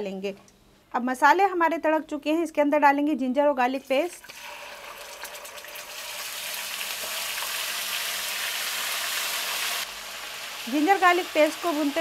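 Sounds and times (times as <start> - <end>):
paste sizzling in hot oil: 4.3 - 12.0.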